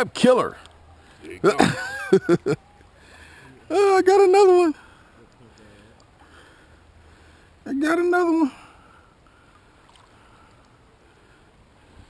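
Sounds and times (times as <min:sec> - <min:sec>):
creek water flowing over rocks: 0:02.2 - 0:12.0.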